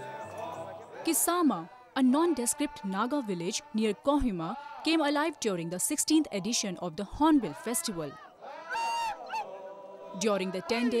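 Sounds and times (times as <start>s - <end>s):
men chanting as a group: 0.0s - 11.0s.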